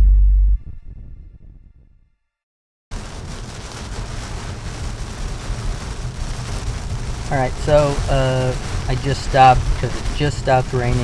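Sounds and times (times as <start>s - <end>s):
heavy rain on car windshield: 2.9s - 11.0s
road and tyre noise: 3.0s - 11.0s.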